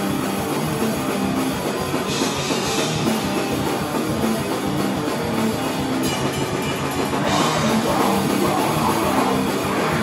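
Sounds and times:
distorted electric guitar: 0:00.0 - 0:10.0
drum kit with cymbals: 0:00.0 - 0:10.0.

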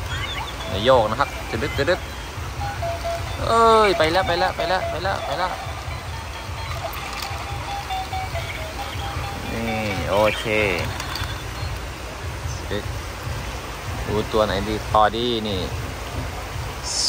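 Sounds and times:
toy playing electronic beeping tune: 0:00.0 - 0:11.8
steady low rumble: 0:00.0 - 0:17.0.

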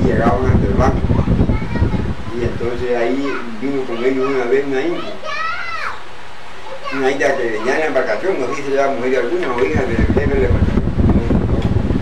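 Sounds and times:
steady background hiss: 0:00.0 - 0:12.0
child calling out: 0:03.0 - 0:06.1, 0:06.7 - 0:09.0.

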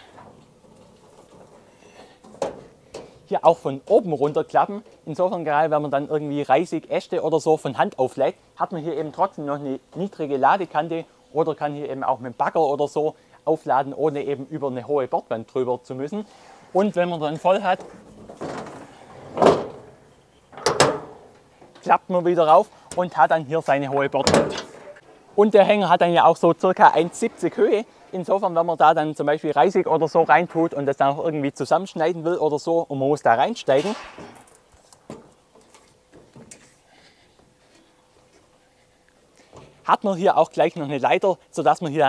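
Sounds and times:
metal sideboard swinging: 0:18.1 - 0:21.4, 0:24.2 - 0:25.0, 0:33.8 - 0:36.7
boots climbing metal ladder: 0:24.2 - 0:24.9, 0:33.9 - 0:36.8.

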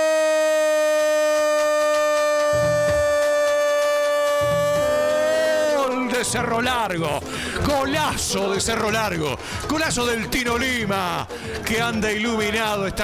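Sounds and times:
man shouting goal: 0:00.0 - 0:06.5.

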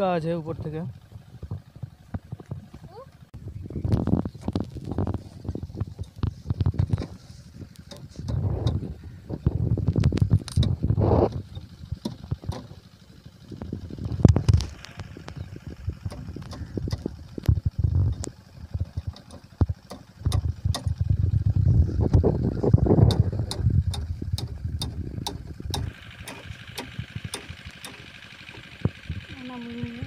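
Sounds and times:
low rumbling: 0:00.0 - 0:30.0
steady higher hum: 0:00.0 - 0:30.0.

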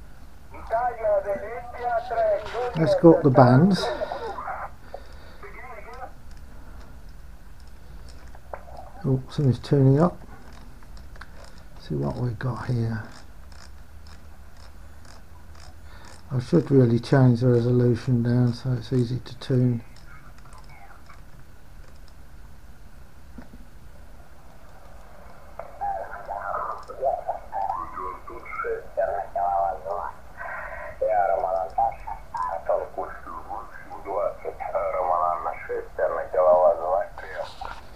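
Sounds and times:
radio static hiss: 0:00.0 - 0:07.0, 0:07.8 - 0:10.3, 0:16.3 - 0:21.8, 0:22.8 - 0:37.9
garbled radio voice: 0:00.5 - 0:06.2, 0:25.6 - 0:37.9.

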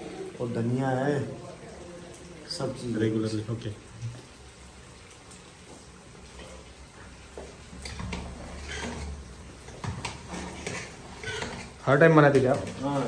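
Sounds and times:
chicken frying in a wok: 0:00.0 - 0:13.0
gas burners hissing: 0:00.0 - 0:13.0.

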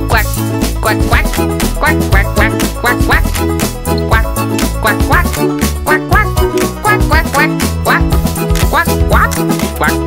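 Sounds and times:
bouncy children's song music: 0:00.0 - 0:10.0
duck quacks: 0:00.1 - 0:03.4, 0:04.1 - 0:10.0.

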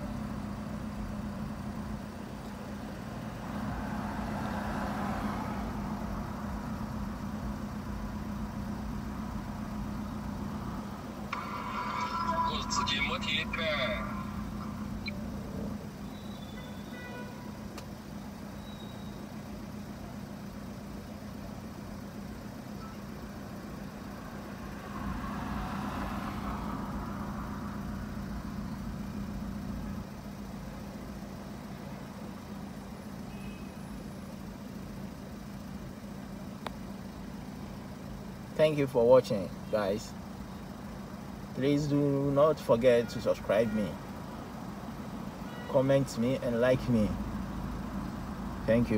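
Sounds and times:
engine and road drone: 0:00.0 - 0:48.9.

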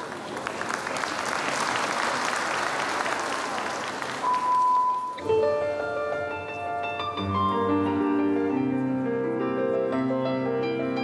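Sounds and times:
crowd applauding: 0:00.0 - 0:05.0
steady beep: 0:04.3 - 0:05.3
piano music: 0:04.4 - 0:11.0.

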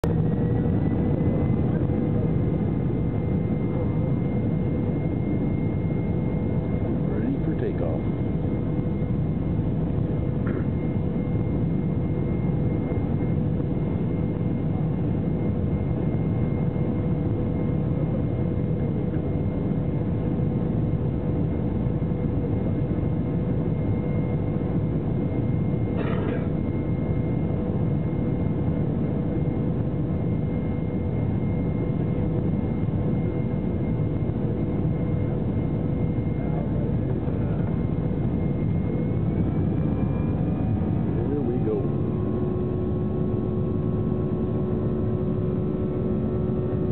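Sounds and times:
aircraft engines humming: 0:00.0 - 0:46.9
constant thin whine: 0:00.0 - 0:46.9.

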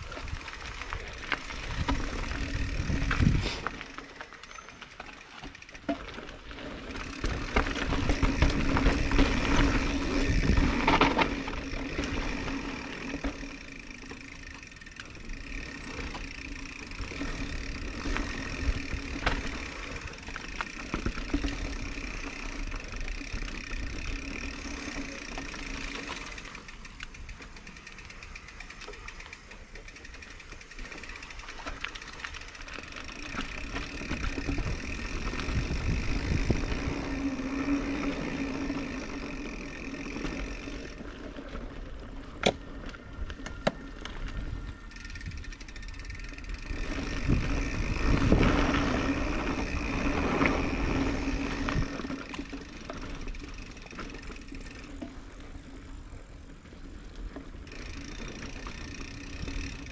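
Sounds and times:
bike rattling and clicking: 0:00.0 - 0:59.9
bike tyres crunching over dirt: 0:00.0 - 0:59.9
wind on microphone: 0:01.7 - 0:03.7, 0:34.6 - 0:37.2, 0:47.1 - 0:49.1.

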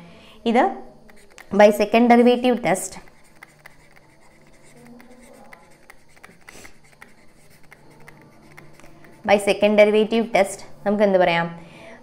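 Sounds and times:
faint steady hum: 0:00.0 - 0:12.0
stylus writing on tablet: 0:01.0 - 0:10.4.

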